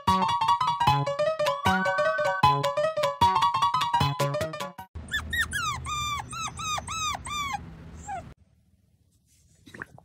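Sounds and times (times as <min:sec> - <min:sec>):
puppy whining: 0:05.0 - 0:08.4.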